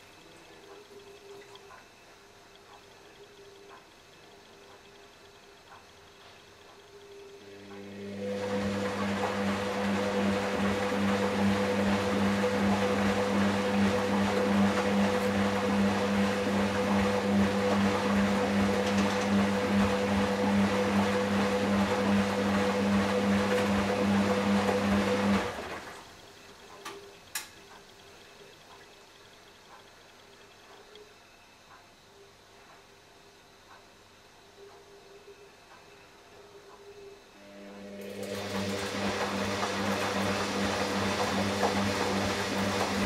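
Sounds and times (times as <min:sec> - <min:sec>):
washing machine running: 0:00.0 - 0:31.0, 0:36.3 - 0:43.0
faint clicks: 0:26.6 - 0:32.0.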